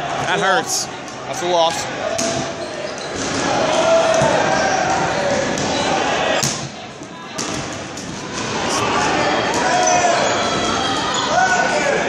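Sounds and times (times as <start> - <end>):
people shouting: 1.9 - 6.6, 8.3 - 12.0
balls thudding and bouncing: 2.1 - 9.8.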